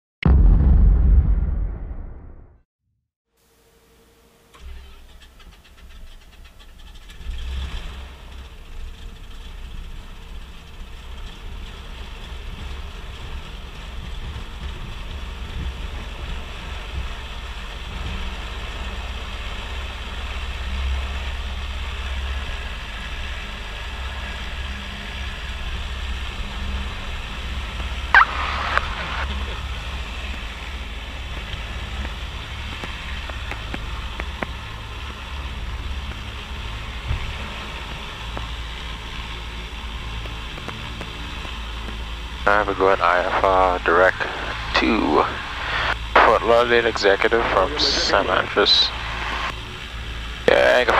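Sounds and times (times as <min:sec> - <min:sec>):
aircraft engines idling: 0:04.1 - 0:07.2, 0:08.0 - 0:50.9.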